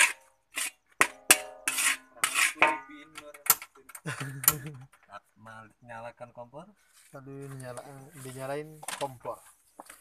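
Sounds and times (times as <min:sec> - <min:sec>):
metal spatula scraping a wok: 0:00.0 - 0:03.6.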